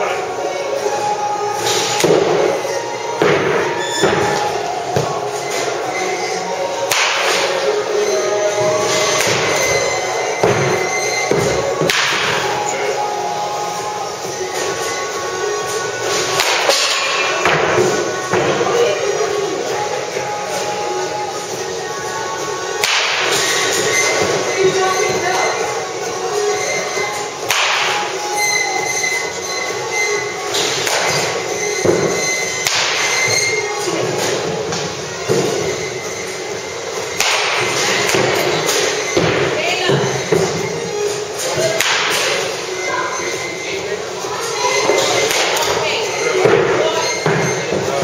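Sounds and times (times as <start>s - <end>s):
background music: 0.0s - 48.0s
baseball bat hitting ball: 37.2s - 38.2s.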